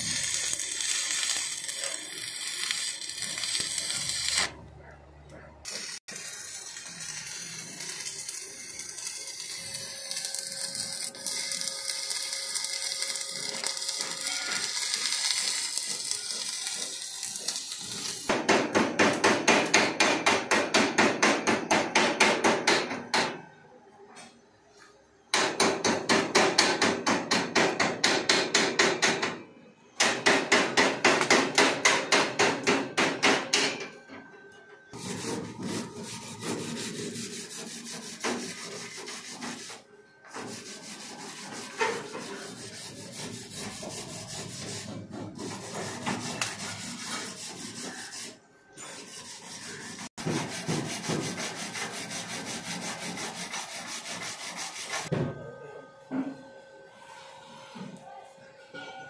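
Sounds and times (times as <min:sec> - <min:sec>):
wire brush scraping weld: 0:00.0 - 0:04.6, 0:05.7 - 0:18.4, 0:35.0 - 0:50.1.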